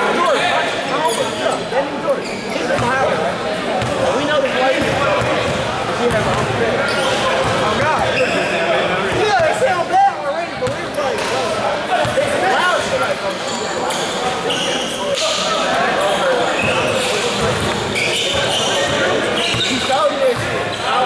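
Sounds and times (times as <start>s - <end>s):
echoing crowd voices: 0.0s - 21.0s.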